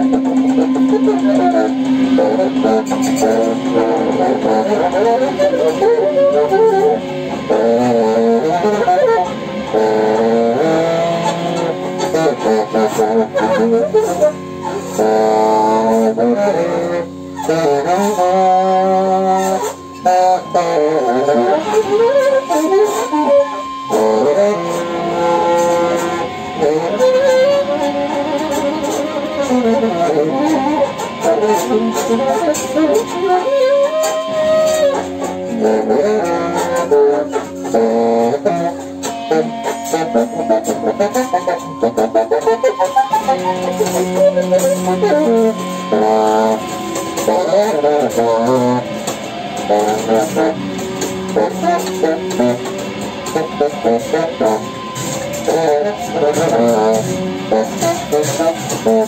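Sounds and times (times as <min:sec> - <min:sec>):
saxophone: 0:00.0 - 0:59.0
steady high tone: 0:00.0 - 0:59.0
keyboard electronic sounds: 0:17.9 - 0:59.0.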